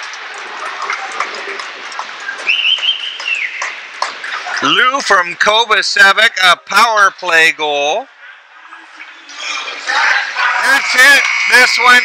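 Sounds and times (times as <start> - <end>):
ice rink ambience: 0.0 - 12.0.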